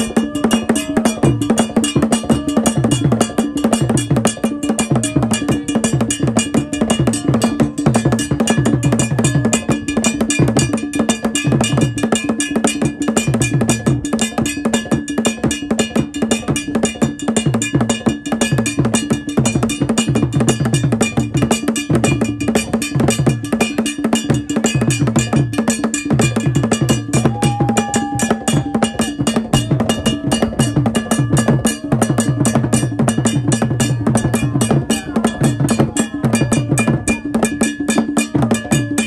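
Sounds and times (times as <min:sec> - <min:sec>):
drums beaten with sticks: 0:00.0 - 0:39.0
ringing bell: 0:00.0 - 0:39.0.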